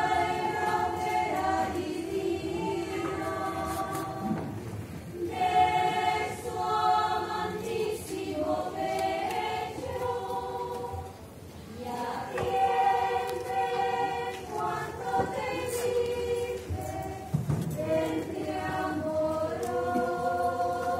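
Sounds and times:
women's choir singing unaccompanied: 0.0 - 20.9.

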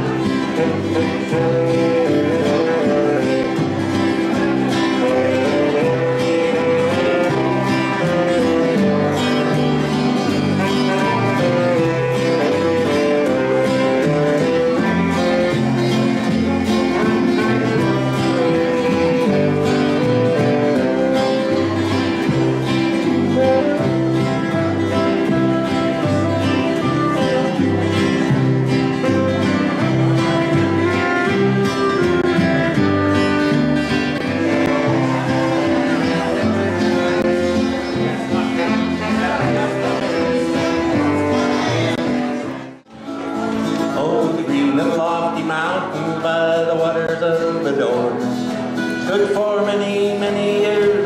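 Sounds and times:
bass notes: 0.0 - 51.0
held melody notes: 0.0 - 51.0
strummed acoustic guitars: 0.0 - 51.0.

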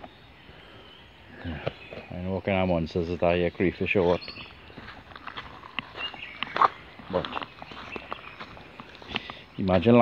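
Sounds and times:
footsteps crunching on pebbles: 2.9 - 10.0.

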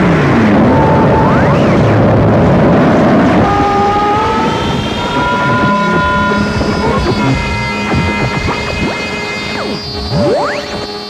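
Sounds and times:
dense distorted noise: 0.0 - 11.0
steady high tones: 3.3 - 11.0.

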